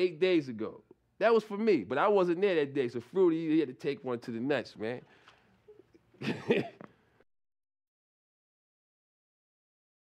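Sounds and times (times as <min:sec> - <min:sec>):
man's raspy laughter: 0:06.2 - 0:06.8.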